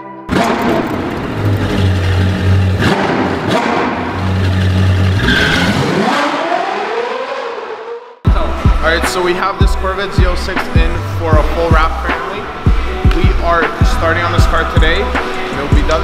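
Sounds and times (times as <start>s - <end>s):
music with deep bass hum: 0.3s - 5.3s, 8.3s - 16.0s
sports car engine revving: 0.3s - 8.2s.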